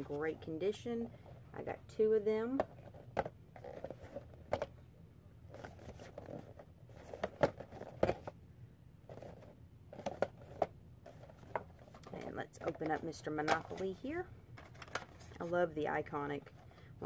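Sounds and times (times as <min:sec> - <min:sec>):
cardboard boxes being handled: 0:05.5 - 0:08.3, 0:09.0 - 0:13.9.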